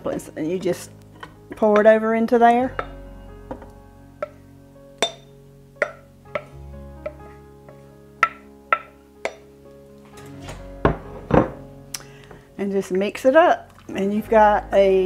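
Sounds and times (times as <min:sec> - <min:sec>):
soft background music: 0:00.0 - 0:15.0
spoon knocking on pot rim: 0:05.0 - 0:05.2, 0:05.8 - 0:09.5.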